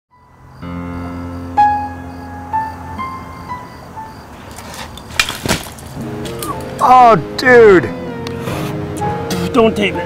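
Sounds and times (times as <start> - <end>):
bike crashing into brush: 4.4 - 6.8.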